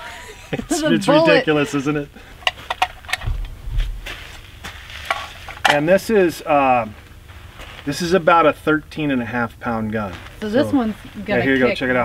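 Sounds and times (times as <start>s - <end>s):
low rumble: 3.0s - 5.6s.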